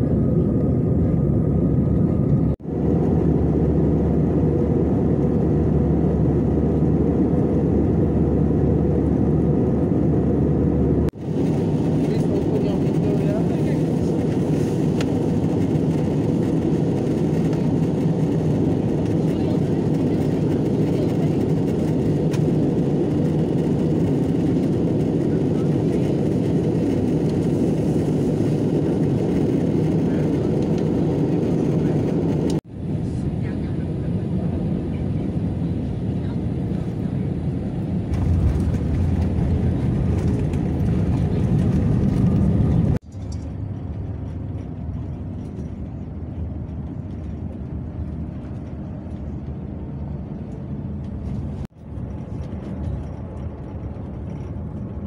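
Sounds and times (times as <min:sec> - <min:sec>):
airliner rolling on runway: 0:00.0 - 0:55.0
bus engine and road noise: 0:00.0 - 0:55.0
jet airliner cabin noise: 0:00.0 - 0:55.0.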